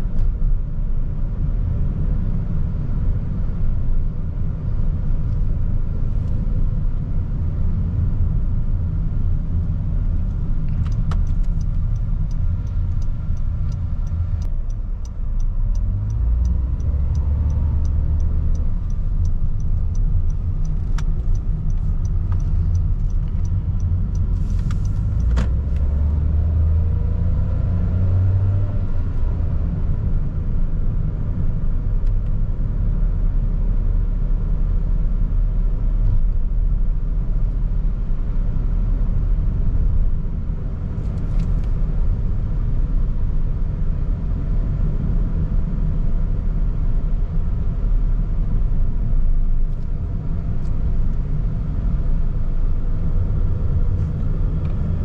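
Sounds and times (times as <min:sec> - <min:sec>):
car engine and tyres rumbling: 0:00.0 - 0:55.0
even ticking: 0:10.3 - 0:25.6.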